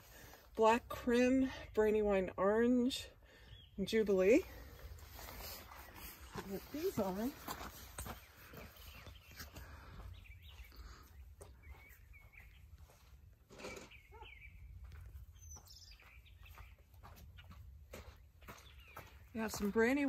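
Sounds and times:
faint bird chirps: 8.1 - 17.6.

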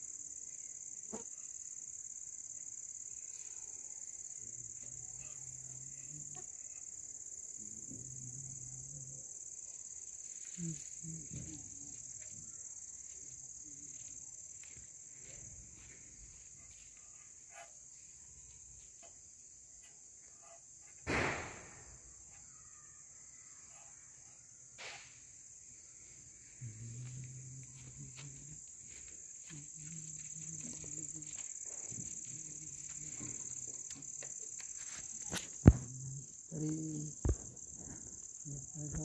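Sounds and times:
crickets chirring: 0.0 - 39.0
loud thump: 21.0 - 21.8, 35.6 - 36.0.

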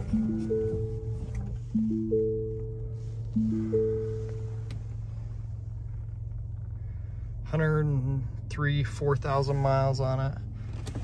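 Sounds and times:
dashboard chime: 0.0 - 4.7
car engine idling: 0.0 - 11.0.

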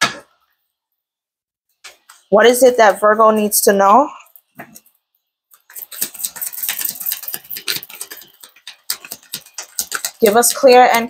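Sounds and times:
cards being shuffled: 5.6 - 10.6.

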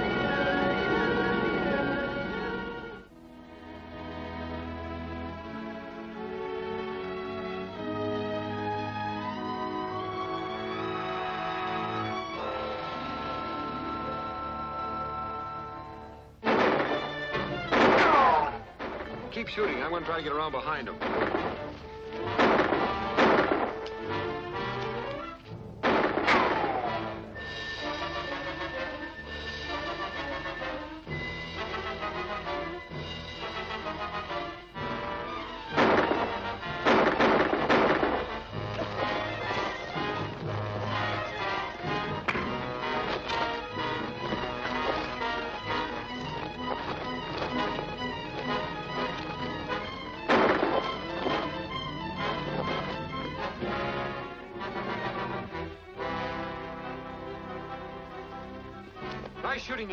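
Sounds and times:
tense orchestral film score: 0.0 - 59.9
sharp gunshots: 16.4 - 20.0, 20.8 - 23.9, 25.8 - 27.2, 35.6 - 40.0, 49.7 - 52.5.

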